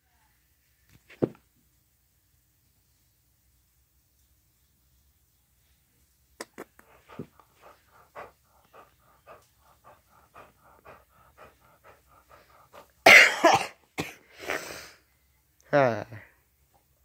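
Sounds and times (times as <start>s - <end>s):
person coughing: 13.0s - 14.2s.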